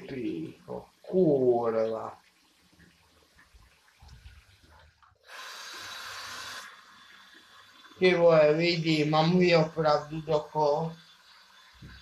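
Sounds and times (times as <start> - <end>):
water running: 0.0 - 12.0.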